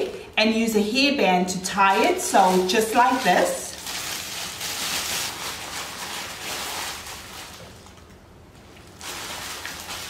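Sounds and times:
plastic bag crinkling: 0:01.8 - 0:10.0.

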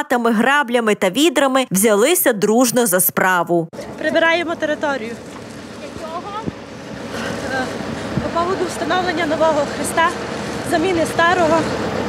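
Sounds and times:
wind buffeting microphone: 0:03.8 - 0:12.0.

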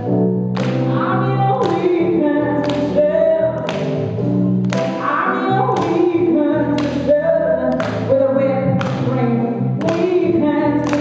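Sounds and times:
synthesizer chords: 0:00.0 - 0:11.0
woman singing: 0:00.9 - 0:03.8, 0:04.9 - 0:11.0.

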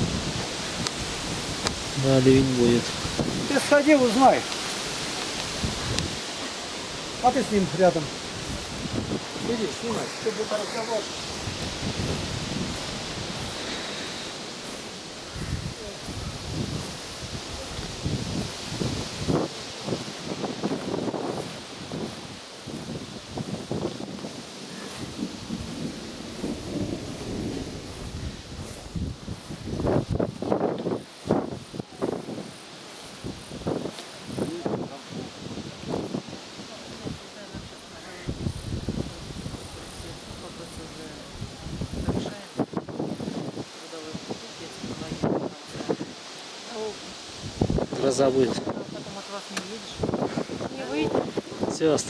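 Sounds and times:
wind buffeting microphone: 0:00.0 - 0:52.0
wind through grass: 0:00.0 - 0:52.0.

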